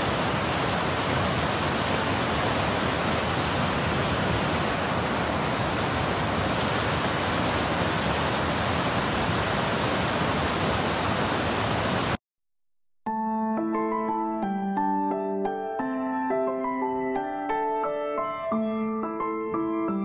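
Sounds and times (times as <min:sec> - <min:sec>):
waterfall rushing: 0:00.0 - 0:12.2.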